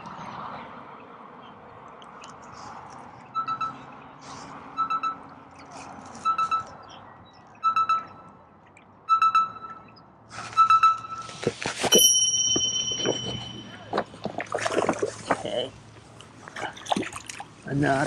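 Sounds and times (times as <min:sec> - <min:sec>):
electronic alarm beeping: 0:03.4 - 0:03.8, 0:04.8 - 0:05.2, 0:06.2 - 0:06.7, 0:07.6 - 0:08.3, 0:09.1 - 0:10.0, 0:10.6 - 0:14.0.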